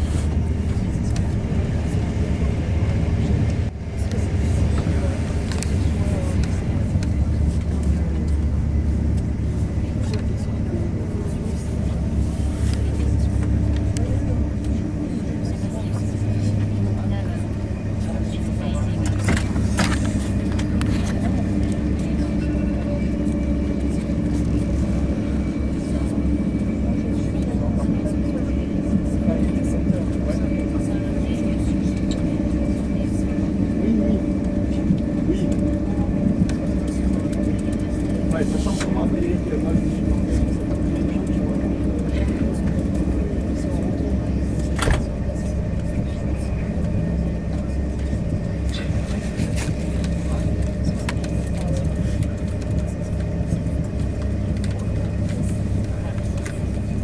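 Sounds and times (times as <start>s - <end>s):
high-speed train rumble inside: 0.0s - 57.0s
passengers talking: 0.0s - 57.0s.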